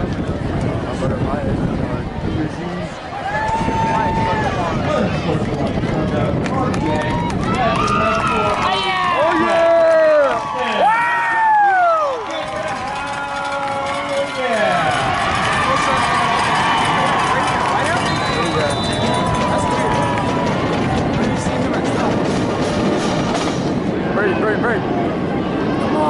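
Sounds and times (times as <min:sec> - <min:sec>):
crowd yelling and cheering: 0:00.0 - 0:26.0.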